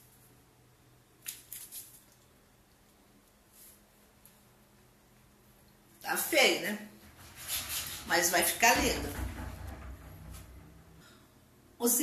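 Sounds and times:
soft scraping or rustling: 3.5s - 4.1s, 7.0s - 8.3s.

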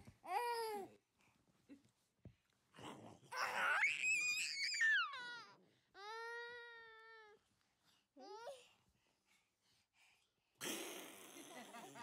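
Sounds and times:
child shrieking: 3.4s - 5.4s.

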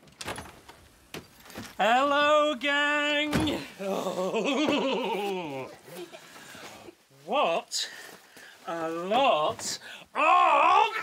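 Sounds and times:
voice making wordless tones: 8.7s - 11.0s.

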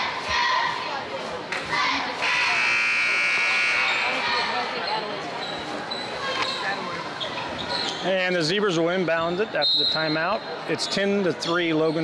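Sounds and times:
scoreboard buzzer blast: 2.2s - 4.3s.

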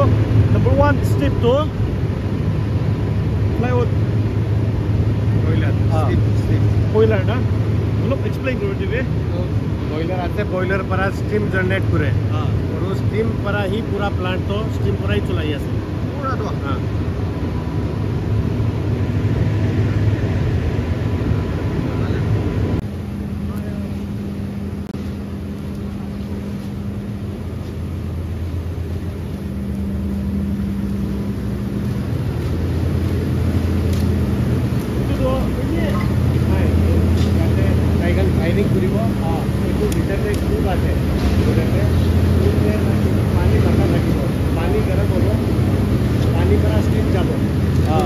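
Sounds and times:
factory machinery drone: 0.0s - 48.0s
faint high whine: 0.0s - 48.0s.

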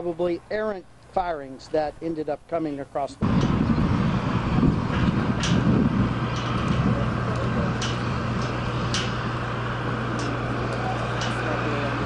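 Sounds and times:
droning hum: 0.0s - 12.0s
low mechanical rumble: 0.0s - 12.0s.

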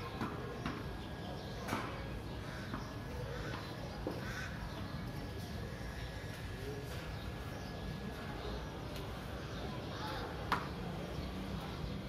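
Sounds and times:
bird calls: 0.0s - 12.0s.

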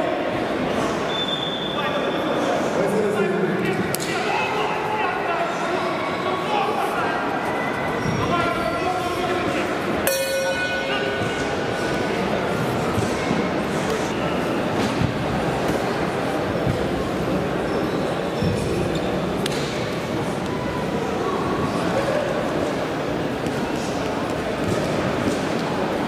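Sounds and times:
voices talking and calling out: 0.0s - 26.0s
short ringing ping: 10.1s - 11.1s.

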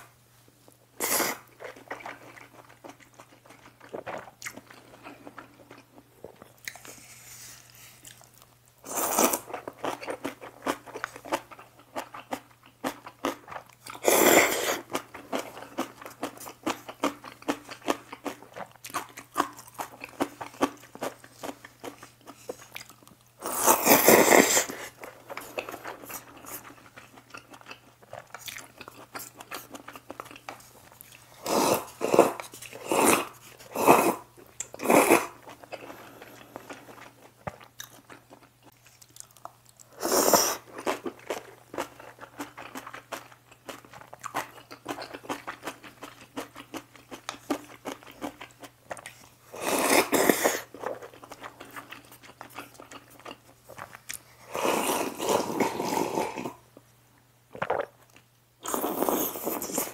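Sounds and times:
wet chewing: 9.1s - 33.7s
slurping noodles: 14.0s - 14.9s, 23.4s - 26.7s, 31.4s - 37.0s, 39.9s - 40.8s, 49.5s - 50.8s, 54.4s - 56.6s, 58.6s - 59.9s.

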